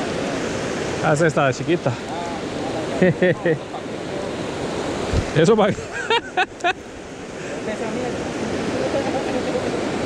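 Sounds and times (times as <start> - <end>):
river rushing over rocks: 0.0 - 5.8, 6.4 - 10.0.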